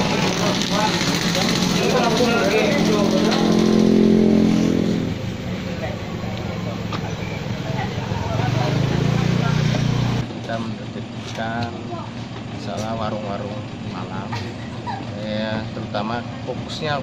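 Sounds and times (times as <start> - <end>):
motorcycle engine running: 0.0 - 14.3.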